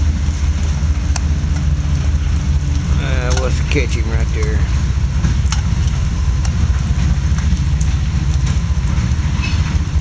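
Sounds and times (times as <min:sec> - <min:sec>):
heavy rain falling: 0:00.0 - 0:10.0
train rumbling: 0:00.0 - 0:10.0
sharp drip clicks: 0:01.0 - 0:09.8.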